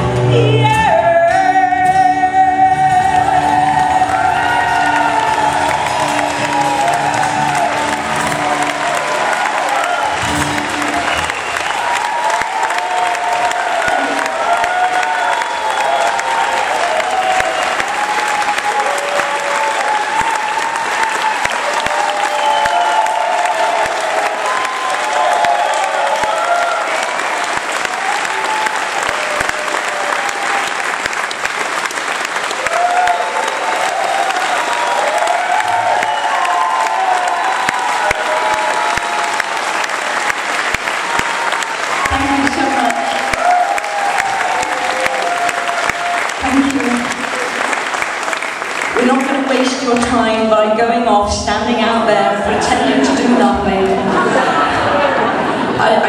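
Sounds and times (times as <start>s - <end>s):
shouts and cheers: 0.9s - 31.5s, 32.3s - 50.1s, 52.4s - 56.0s
audience clapping: 3.0s - 50.3s, 52.9s - 56.0s.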